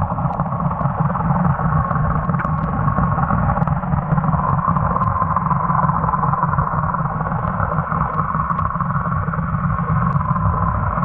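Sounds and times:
muffled underwater rumble and hiss: 0:00.0 - 0:11.0
faint ticks: 0:01.8 - 0:02.9, 0:03.6 - 0:05.6, 0:07.3 - 0:08.8, 0:10.0 - 0:10.4.

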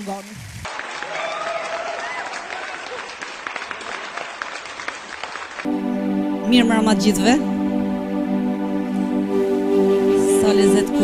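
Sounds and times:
audience applauding: 0:00.6 - 0:05.8
band keyboard music: 0:05.6 - 0:11.0.

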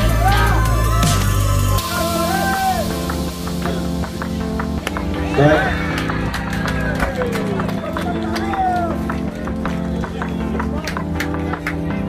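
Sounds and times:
pop song with steady beat: 0:00.0 - 0:09.9.

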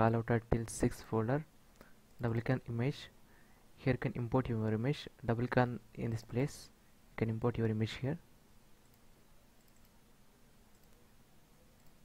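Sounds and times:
faint computer mouse clicks: 0:01.7 - 0:02.3, 0:08.8 - 0:10.0, 0:10.7 - 0:11.0, 0:11.8 - 0:12.0.

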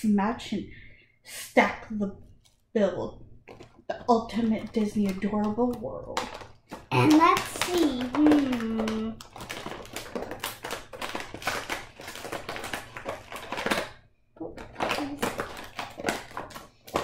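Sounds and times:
plastic blister pack crinkling: 0:03.4 - 0:17.0.

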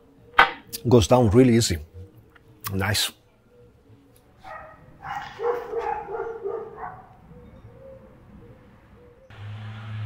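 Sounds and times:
dog whining and yipping: 0:04.4 - 0:08.2.

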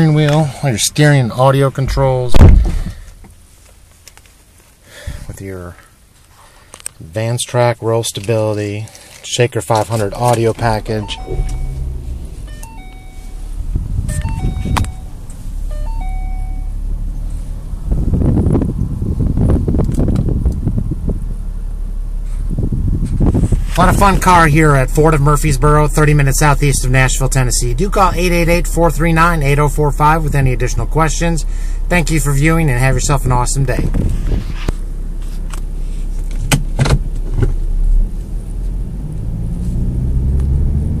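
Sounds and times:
car engine running: 0:09.8 - 0:41.0
electronic chime tones: 0:10.8 - 0:16.8.

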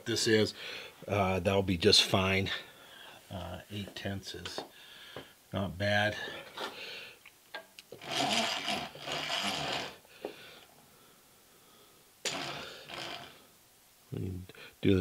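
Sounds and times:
milling machine feed gear noise: 0:08.0 - 0:10.0, 0:12.3 - 0:13.3.

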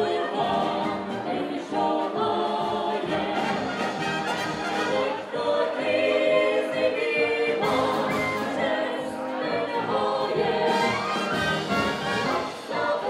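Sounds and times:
group of singers singing: 0:00.0 - 0:13.0
brass band playing: 0:00.5 - 0:01.6, 0:02.6 - 0:05.7, 0:07.6 - 0:13.0.

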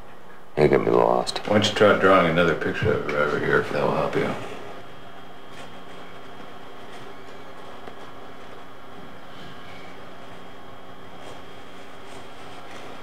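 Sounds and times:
room hum: 0:00.0 - 0:13.0
pen scratching on paper: 0:10.2 - 0:13.0.

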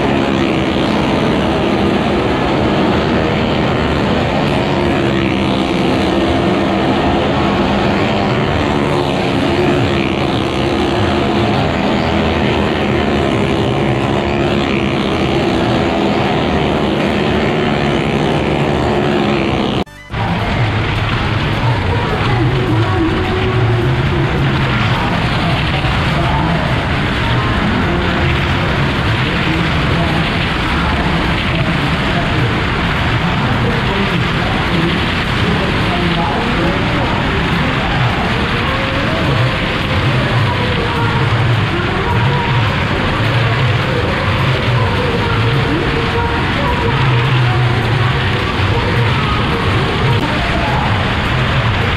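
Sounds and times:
car engines rumbling: 0:00.0 - 0:51.9
crowd voices: 0:00.0 - 0:51.9
music: 0:12.5 - 0:31.7.

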